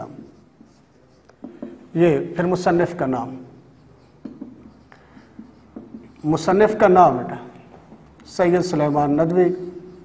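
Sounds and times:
marker pen scratching on whiteboard: 0.0 - 10.0.

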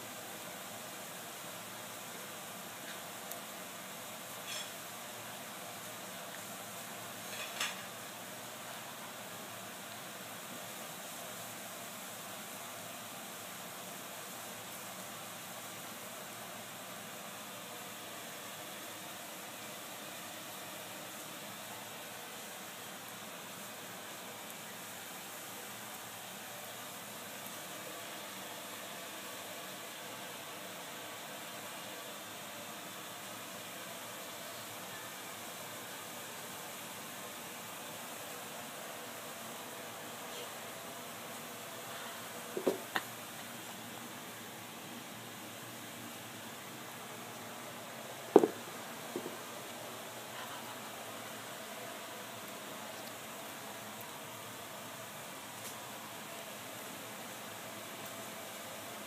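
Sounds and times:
background hiss: 0.0 - 59.0.

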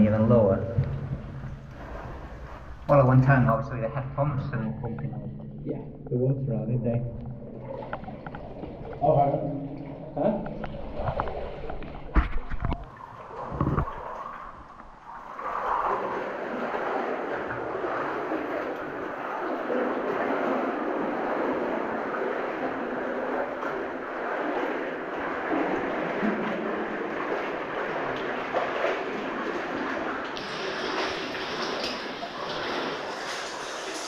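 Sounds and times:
water splashing from wading: 0.0 - 5.6, 7.1 - 34.0.

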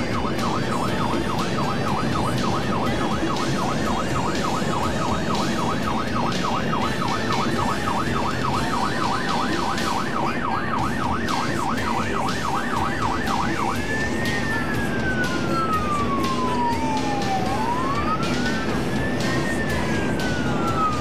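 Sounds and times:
emergency siren yelp and wail: 0.0 - 21.0.

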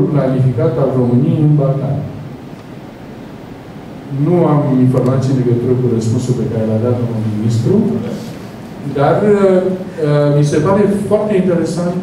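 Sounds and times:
room and microphone hiss: 0.0 - 12.0.

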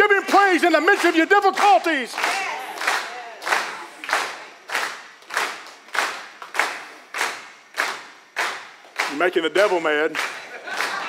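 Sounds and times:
congregation clapping in rhythm: 0.0 - 11.0.

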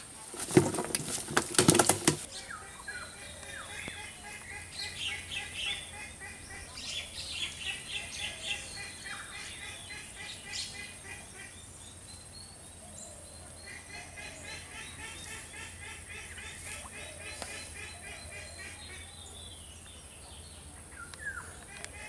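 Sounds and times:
birds chirping and calling: 0.0 - 22.0.

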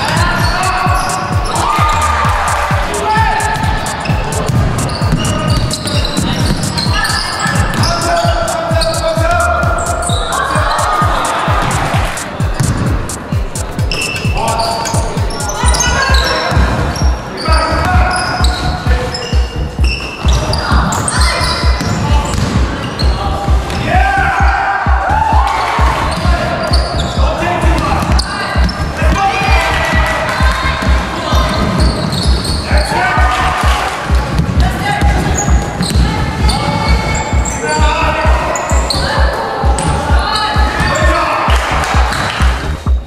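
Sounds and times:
low repeated thumping: 0.0 - 43.0
voices calling and shouting: 0.0 - 43.0.

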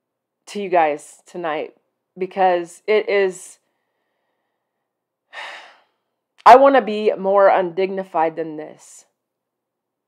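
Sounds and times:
woman breathing: 3.6 - 6.1.

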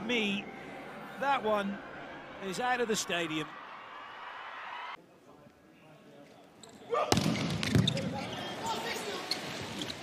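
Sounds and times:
crowd shouting and cheering: 0.0 - 5.0.

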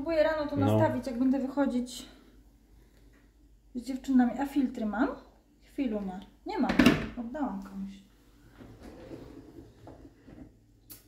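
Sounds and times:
kitchen drawer opening: 8.7 - 10.1.

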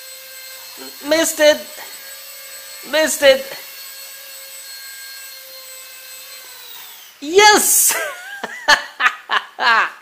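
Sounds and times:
toy helicopter rotor whine: 0.0 - 8.0.

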